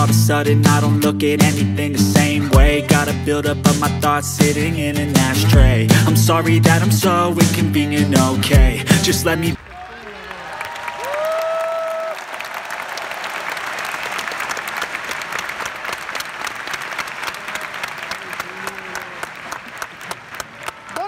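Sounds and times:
crowd applauding and cheering: 0:09.5 - 0:21.0.

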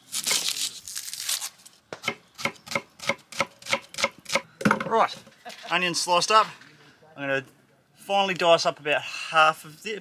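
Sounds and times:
knife cutting dry onion skin: 0:00.0 - 0:04.4.

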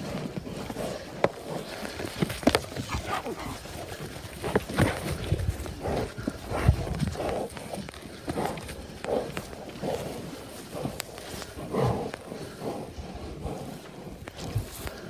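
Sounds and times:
thuds of bodies and hooves on turf: 0:00.0 - 0:15.0.

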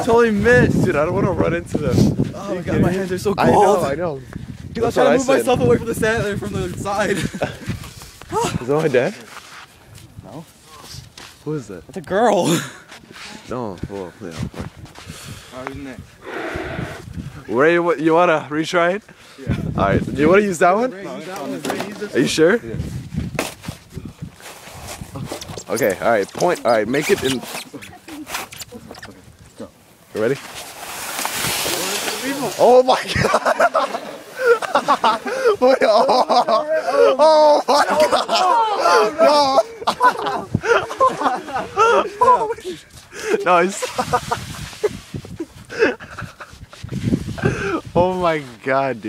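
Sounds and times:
shuffling and crunching in snow: 0:22.1 - 0:28.8, 0:30.1 - 0:35.5, 0:42.2 - 0:49.0
person breathing hard: 0:35.2 - 0:35.6, 0:43.0 - 0:43.4, 0:47.4 - 0:47.9.

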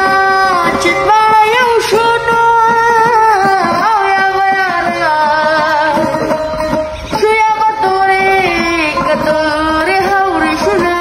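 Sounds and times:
plucked lute: 0:00.0 - 0:11.0.

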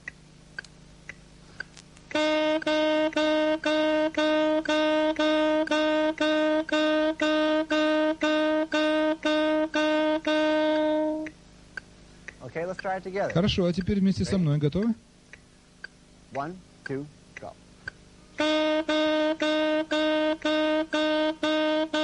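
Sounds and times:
metronome ticking: 0:00.0 - 0:22.0
saxophone repeated tongued notes: 0:02.1 - 0:11.4, 0:18.3 - 0:22.0.

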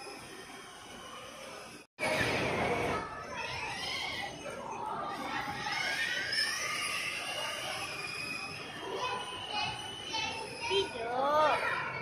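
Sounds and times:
children's voices and chatter: 0:00.0 - 0:12.0.

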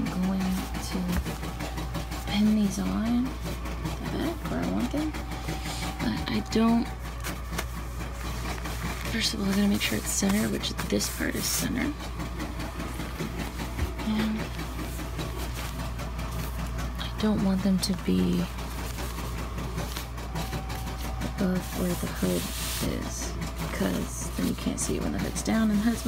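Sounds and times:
embroidery machine stitching: 0:00.0 - 0:26.0
steady low hum: 0:00.0 - 0:26.0
jacket fabric rustling: 0:06.9 - 0:26.0.

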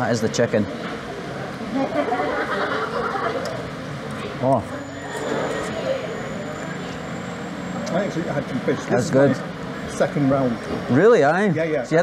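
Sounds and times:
people talking in restaurant: 0:00.0 - 0:12.0.

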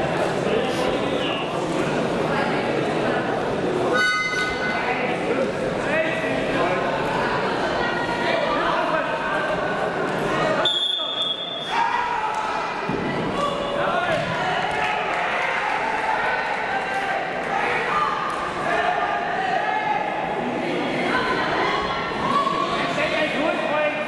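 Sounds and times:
people calling out in a hall: 0:00.0 - 0:24.0
high steady tone: 0:03.9 - 0:04.9.

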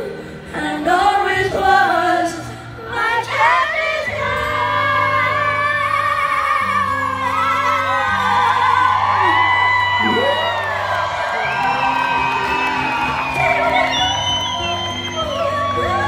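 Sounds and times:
live band playing: 0:04.0 - 0:16.0
audience whooping and cheering: 0:06.0 - 0:16.0.

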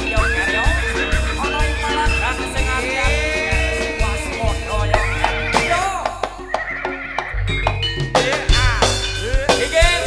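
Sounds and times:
sustained pitched instrument tones: 0:00.0 - 0:08.2
deep bass layer: 0:00.0 - 0:10.0
percussion strokes on steady beat: 0:00.0 - 0:10.0.

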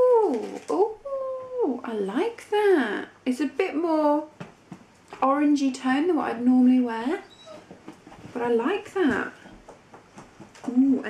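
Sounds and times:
woman talking: 0:00.0 - 0:04.4, 0:05.2 - 0:07.5, 0:08.3 - 0:09.6, 0:10.6 - 0:11.0
animal calling: 0:07.2 - 0:07.8.

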